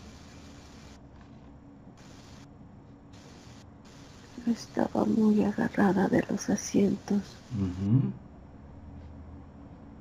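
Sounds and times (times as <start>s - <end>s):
faint audio line hiss: 0.0s - 10.0s.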